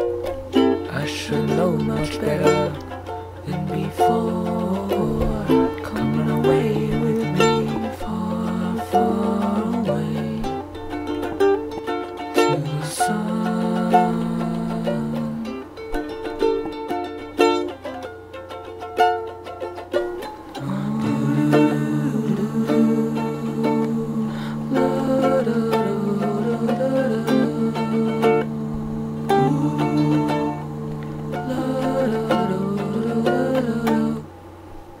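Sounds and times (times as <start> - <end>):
plucked string instrument: 0.0 - 35.0
long held low notes: 0.8 - 11.8, 12.4 - 16.8, 20.5 - 35.0.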